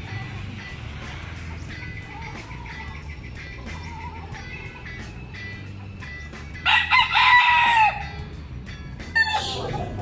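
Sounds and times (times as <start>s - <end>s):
rooster crowing: 6.6s - 8.2s.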